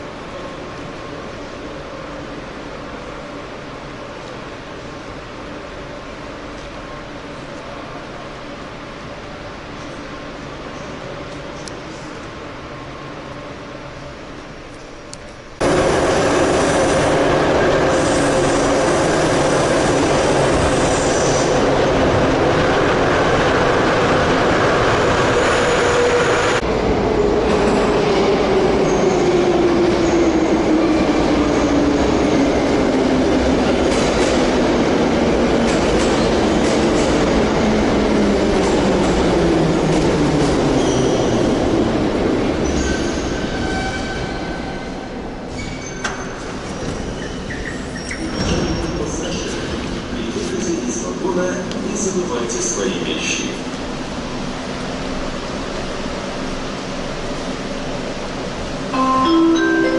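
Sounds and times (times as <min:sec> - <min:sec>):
train wheel and running noise: 0:00.0 - 0:59.0.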